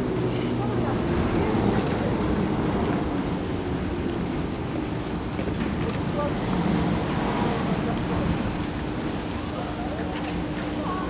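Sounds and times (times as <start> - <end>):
cable car rumbling along ropes: 0.0 - 11.0.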